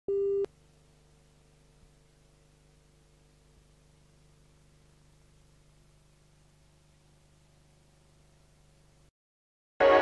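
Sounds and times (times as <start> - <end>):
tape hum and hiss: 0.1 - 9.1.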